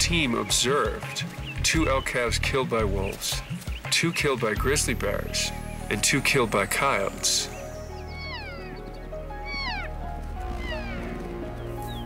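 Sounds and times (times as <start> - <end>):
music with low sustained tones: 4.6 - 12.0
elk mewing calls: 7.8 - 12.0.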